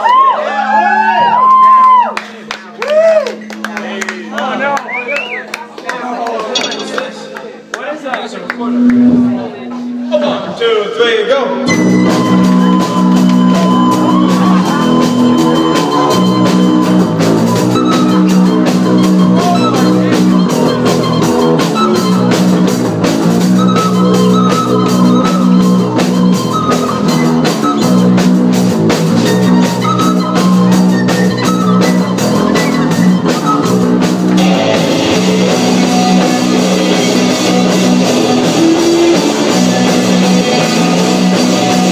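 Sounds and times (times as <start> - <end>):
recorder melody: 8.4 - 10.6, 11.5 - 41.9
drum kit: 11.6 - 41.9
electric guitars: 11.6 - 41.9.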